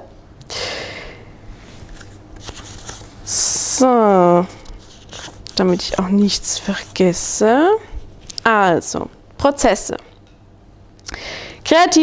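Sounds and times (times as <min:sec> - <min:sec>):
low room hum: 0:00.0 - 0:12.0
paper rustling: 0:01.8 - 0:03.2, 0:04.5 - 0:07.0.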